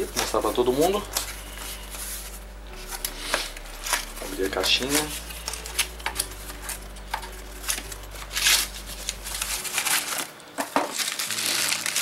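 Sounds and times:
plastic bags rustling: 0:00.0 - 0:12.0
plastic crinkle: 0:03.0 - 0:12.0.

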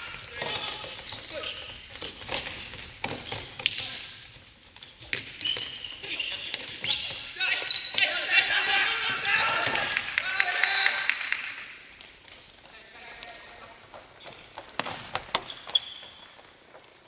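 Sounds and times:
sneaker squeaks: 0:00.0 - 0:04.2, 0:04.8 - 0:09.2, 0:14.1 - 0:16.8
players shouting: 0:07.4 - 0:11.1.

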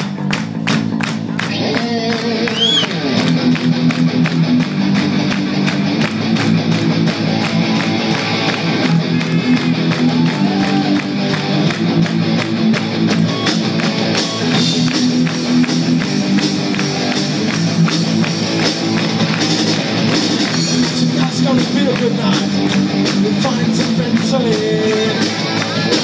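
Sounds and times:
bass guitar: 0:00.0 - 0:26.0
drum beat: 0:00.0 - 0:26.0
electric guitar: 0:00.0 - 0:26.0.

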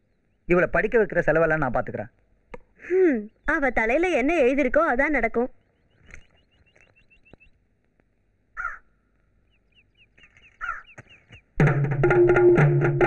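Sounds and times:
crow cawing: 0:08.6 - 0:09.1, 0:10.6 - 0:11.0
quick high bird chirps: 0:09.6 - 0:11.6.

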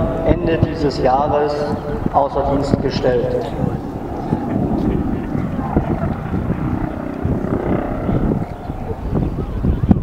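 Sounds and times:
distant helicopter in flight: 0:00.0 - 0:10.0.

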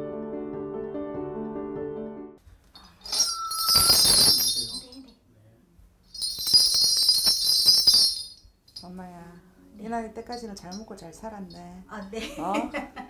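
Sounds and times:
brass bells jingling: 0:02.8 - 0:05.2, 0:06.0 - 0:09.0.

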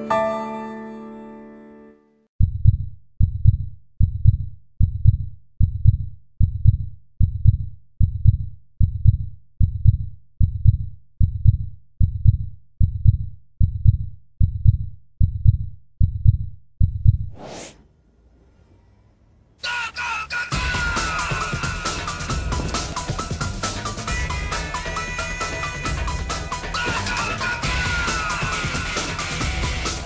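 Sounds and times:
piano chord: 0:00.0 - 0:02.0
heartbeat thumping: 0:02.4 - 0:17.4, 0:21.7 - 0:24.5.

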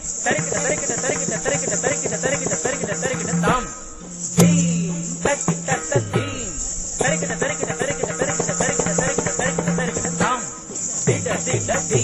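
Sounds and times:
rapid drum strokes: 0:00.0 - 0:12.0
steady drone: 0:01.6 - 0:10.3.

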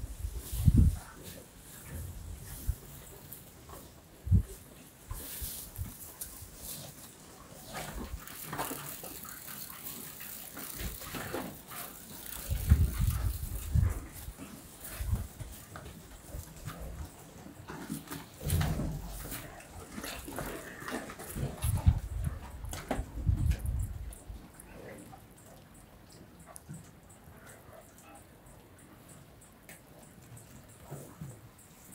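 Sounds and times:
rustling hay: 0:00.0 - 0:17.1
cattle chewing: 0:00.1 - 0:28.2.

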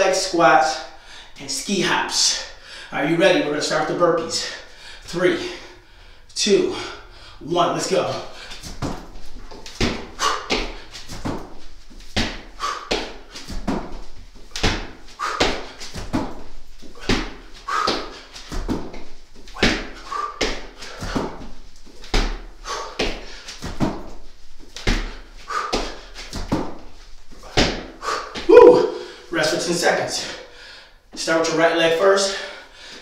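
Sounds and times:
hard breathing: 0:02.4 - 0:03.0, 0:04.4 - 0:07.5, 0:08.2 - 0:11.6, 0:12.3 - 0:13.7, 0:15.0 - 0:18.5, 0:19.8 - 0:21.8, 0:22.4 - 0:23.6, 0:25.0 - 0:26.3, 0:27.3 - 0:29.4, 0:30.2 - 0:31.1, 0:32.2 - 0:33.0
thuds on exercise mat: 0:09.8 - 0:11.6, 0:12.2 - 0:16.4, 0:17.0 - 0:21.4, 0:25.8 - 0:26.8, 0:27.4 - 0:28.6.

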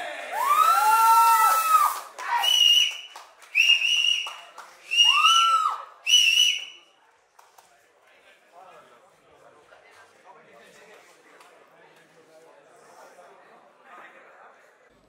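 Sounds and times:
spectators whistling: 0:00.4 - 0:06.9.

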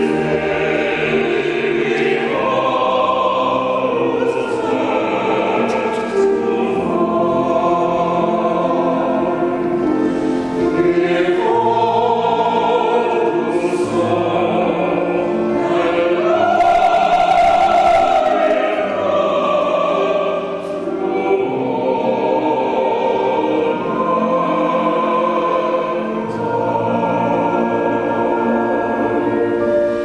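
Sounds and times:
mixed choir singing: 0:00.0 - 0:30.0.

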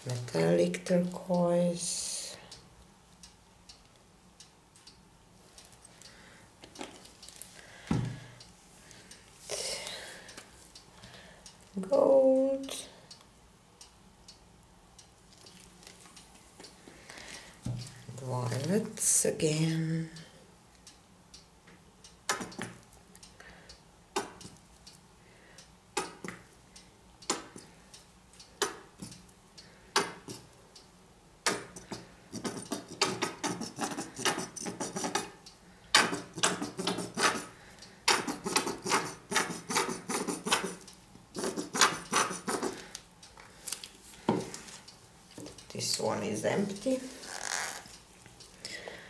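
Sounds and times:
paint bottle squirting: 0:31.8 - 0:35.3, 0:36.0 - 0:37.5, 0:38.1 - 0:40.8, 0:41.4 - 0:42.8.

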